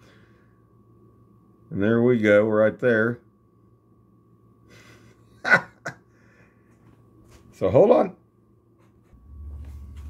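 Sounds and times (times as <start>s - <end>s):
faint high hum: 0.0s - 10.0s.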